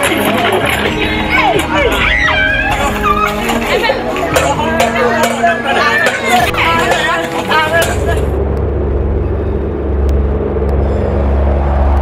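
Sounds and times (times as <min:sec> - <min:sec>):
car engine running: 0:06.4 - 0:12.0.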